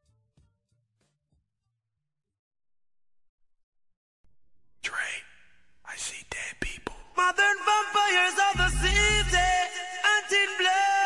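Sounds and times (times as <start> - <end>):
whispered breathy vocals: 4.8 - 7.2, 8.6 - 9.8.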